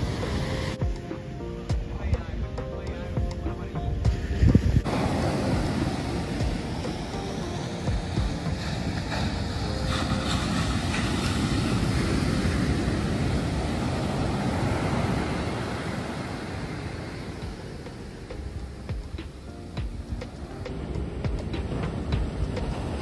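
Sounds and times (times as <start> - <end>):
ocean surf breaking on beach: 0.0 - 23.0.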